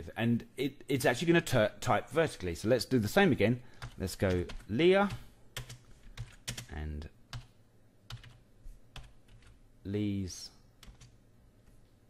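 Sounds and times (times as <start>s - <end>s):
computer keyboard keystrokes: 3.8s - 6.7s, 8.1s - 8.4s, 10.8s - 11.1s.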